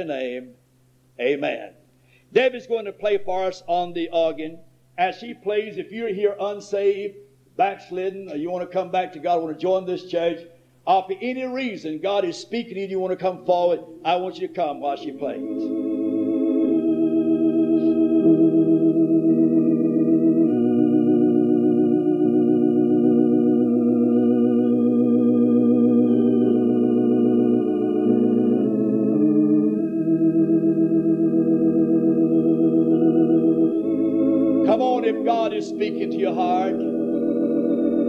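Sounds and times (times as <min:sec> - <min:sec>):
organ playing held chords: 0:13.0 - 0:38.0.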